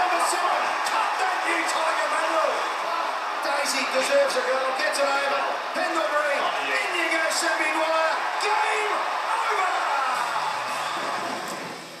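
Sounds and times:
commentators shouting and whooping: 0:00.0 - 0:11.4
crowd cheering: 0:00.0 - 0:12.0.

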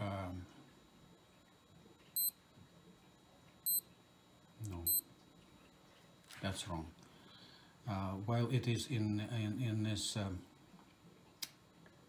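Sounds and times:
digital watch beeps: 0:02.2 - 0:02.4, 0:03.6 - 0:03.8, 0:04.8 - 0:05.0.

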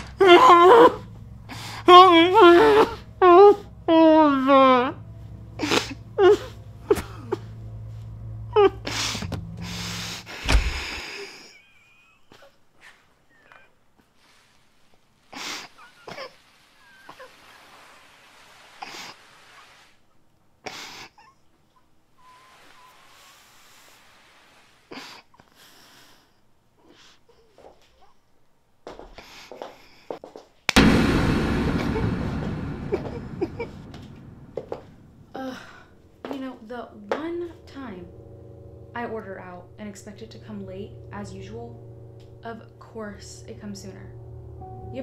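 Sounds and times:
faint thin whistling tones: 0:22.2 - 0:23.8
loud burst of noise: 0:30.8 - 0:36.2.

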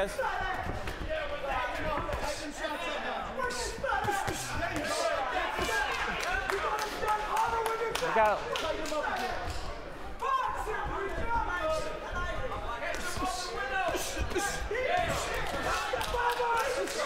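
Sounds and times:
crowd shouting: 0:00.0 - 0:08.2, 0:10.2 - 0:17.0.

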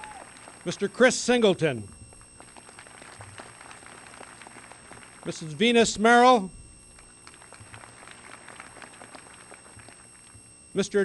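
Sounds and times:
faint scattered applause: 0:00.0 - 0:05.6, 0:06.8 - 0:10.5.

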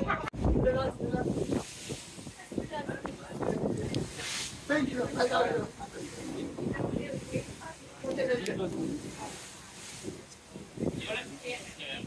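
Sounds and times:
indistinct chatter of people: 0:00.0 - 0:12.0
wind hiss: 0:00.4 - 0:12.0
rushing water: 0:01.2 - 0:12.0.

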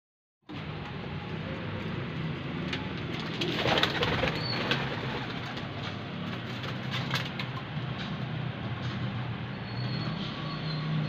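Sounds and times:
pigeons cooing: 0:03.2 - 0:05.7.

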